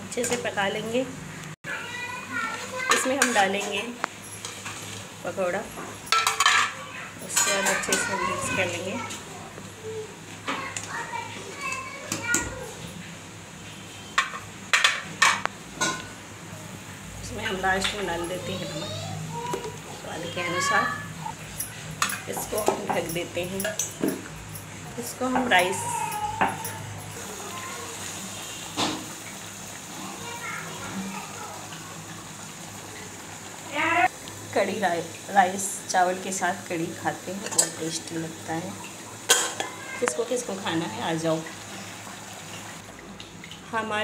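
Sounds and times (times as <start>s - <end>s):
children's voices: 1.7s - 3.8s, 6.6s - 12.9s, 18.0s - 21.4s, 25.4s - 28.2s, 29.9s - 32.4s, 39.5s - 41.2s
metal spoon clinking on steel pan: 6.1s - 8.1s, 21.6s - 24.3s, 37.4s - 37.8s.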